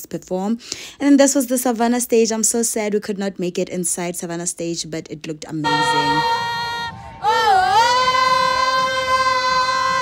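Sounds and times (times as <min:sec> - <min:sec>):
woman singing a long high note: 0:05.6 - 0:10.0.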